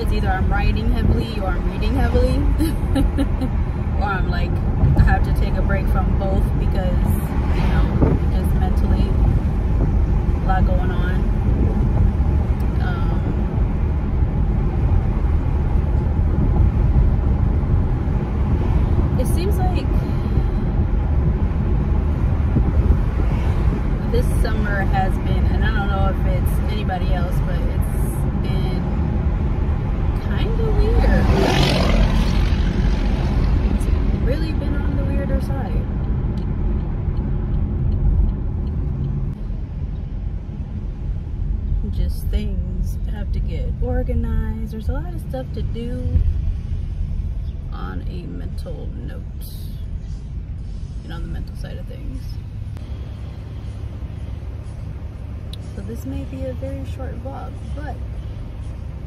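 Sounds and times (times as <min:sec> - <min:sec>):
car cabin road rumble: 0:00.0 - 0:59.0.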